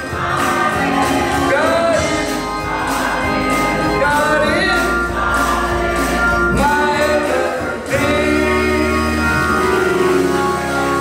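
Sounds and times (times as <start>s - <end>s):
church choir singing: 0.0s - 11.0s
organ accompaniment: 0.0s - 11.0s.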